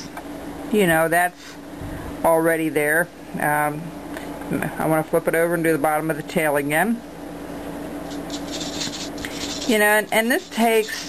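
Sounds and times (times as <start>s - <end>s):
paintbrush scratchy strokes: 8.1s - 11.0s.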